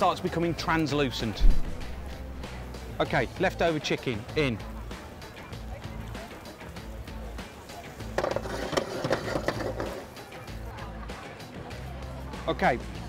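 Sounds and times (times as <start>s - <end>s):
background music with steady beat: 0.0s - 13.0s
chicken sizzling in hot oil: 2.1s - 13.0s.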